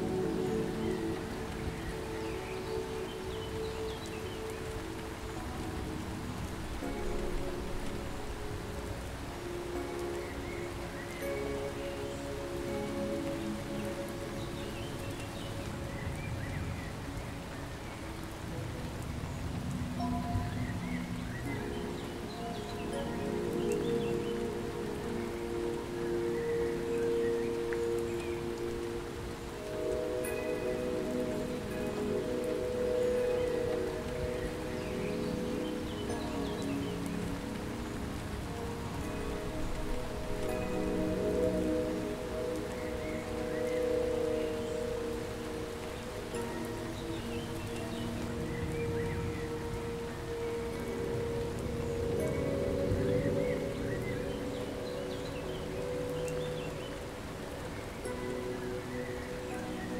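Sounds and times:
rain-like hiss: 0:00.0 - 0:59.9
slow ambient music: 0:00.0 - 0:59.9.

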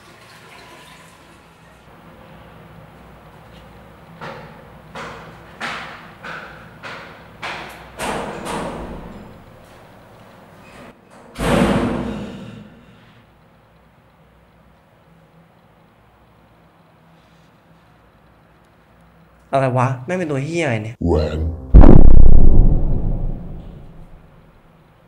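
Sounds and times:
heavy ringing bang: 0:21.5 - 0:24.2
thuds: 0:21.7 - 0:24.2.

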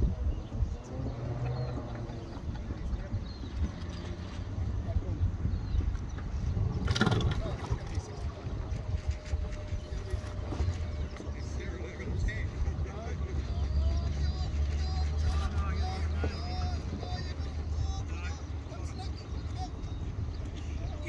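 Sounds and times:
faint voices: 0:00.0 - 0:21.0
wind buffeting microphone: 0:00.0 - 0:21.0.

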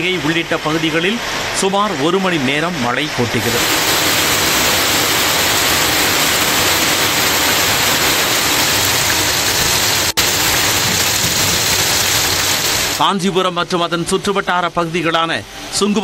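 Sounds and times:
heavy rain on road: 0:03.2 - 0:13.0.

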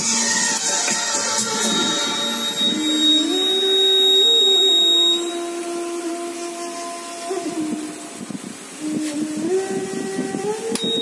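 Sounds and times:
film song with sung note: 0:00.0 - 0:11.0
high electronic buzzer beep: 0:01.4 - 0:05.5, 0:10.8 - 0:11.0.

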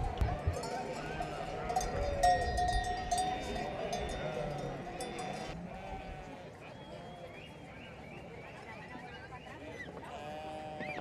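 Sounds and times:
animal bells clanking: 0:00.0 - 0:05.9
crowd chatter: 0:00.0 - 0:11.0
sheep bleating: 0:00.5 - 0:06.6, 0:10.1 - 0:11.0.

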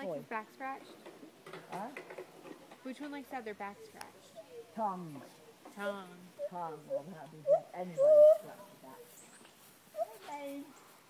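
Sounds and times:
gibbon high call: 0:06.4 - 0:08.5.

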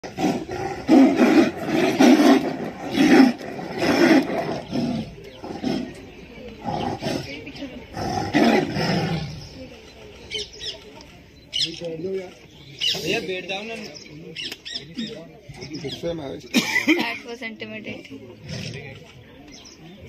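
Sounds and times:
tigers roaring: 0:00.0 - 0:09.6
tigers growling: 0:00.0 - 0:09.7, 0:18.4 - 0:19.2.

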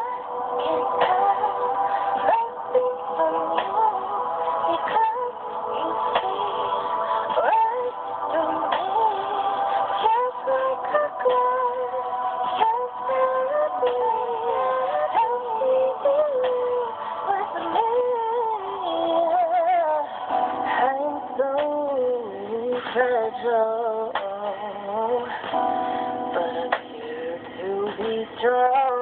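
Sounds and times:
slow r and b song playback: 0:00.0 - 0:29.0.

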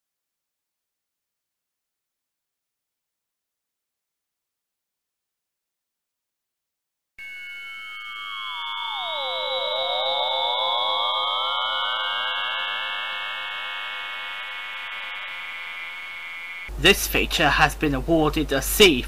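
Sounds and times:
gliding electronic tones: 0:07.2 - 0:16.7.

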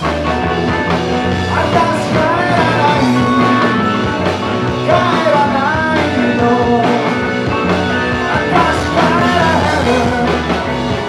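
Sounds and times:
live rock band playing: 0:00.0 - 0:11.0
man singing: 0:01.5 - 0:11.0.

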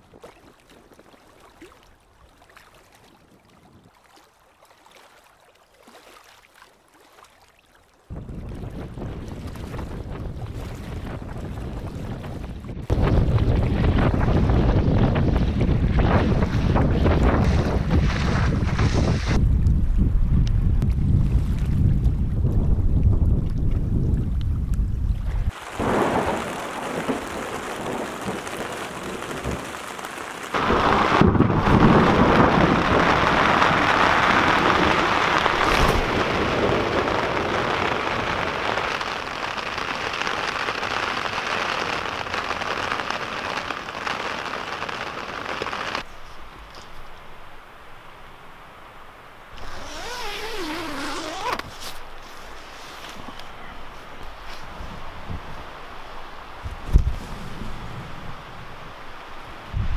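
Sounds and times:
water splashing against canoe: 0:00.0 - 0:19.4, 0:25.3 - 0:41.2
rain on a tent: 0:08.1 - 0:19.8, 0:25.3 - 0:59.9
wind buffeting microphone: 0:08.1 - 0:39.4, 0:56.6 - 0:59.9.

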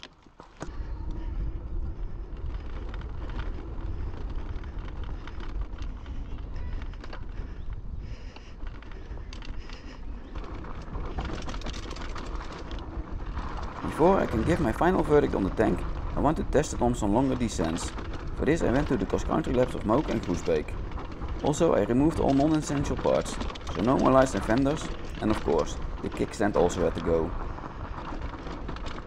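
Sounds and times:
bike riding rumble: 0:00.0 - 0:29.0.

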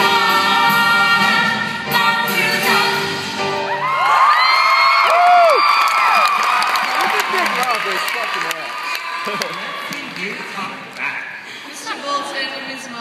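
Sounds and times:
group singing song: 0:00.0 - 0:03.5
audience cheering and whooping: 0:03.6 - 0:10.5.

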